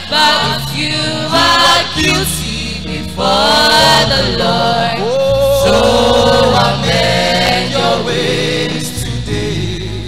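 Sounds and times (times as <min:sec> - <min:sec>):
choir singing: 0:00.0 - 0:10.0
lead voice holding long note: 0:05.0 - 0:07.1.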